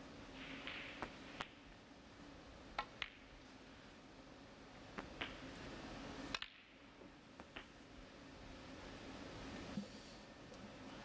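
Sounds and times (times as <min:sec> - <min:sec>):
snooker balls clicking: 0:00.4 - 0:01.6, 0:02.8 - 0:03.4, 0:05.0 - 0:05.5, 0:07.4 - 0:07.8.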